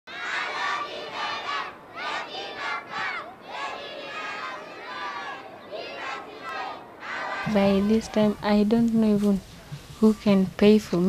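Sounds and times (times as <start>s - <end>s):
children shouting together: 0.1s - 8.2s.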